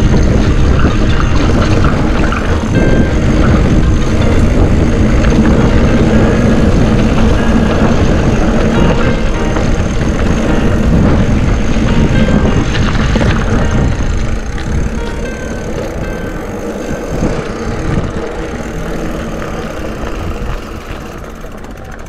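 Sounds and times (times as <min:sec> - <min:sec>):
tyres rumbling on dirt: 0:00.0 - 0:22.0
wind on microphone: 0:00.0 - 0:22.0.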